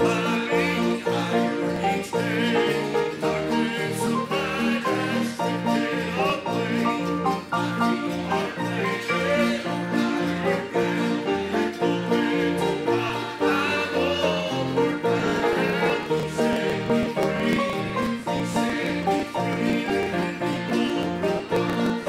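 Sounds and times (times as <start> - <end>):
acoustic bluegrass string music: 0.0 - 22.0.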